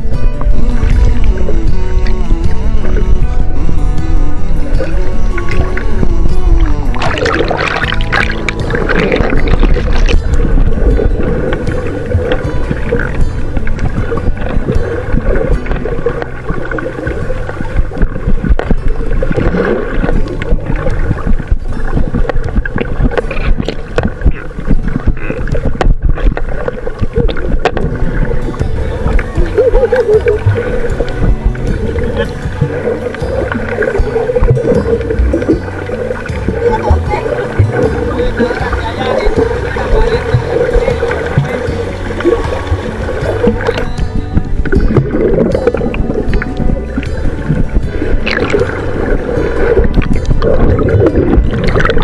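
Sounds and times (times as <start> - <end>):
background music: 0.0 - 52.0
water sloshing against housing: 5.1 - 52.0.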